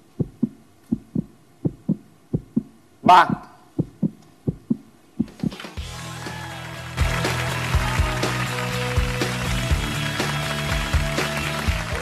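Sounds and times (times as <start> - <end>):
upbeat show music with drums: 5.2 - 12.0
studio audience applauding: 5.5 - 12.0.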